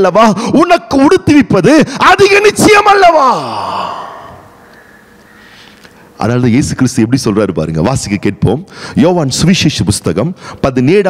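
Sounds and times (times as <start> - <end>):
man's voice sighing: 3.3 - 4.6.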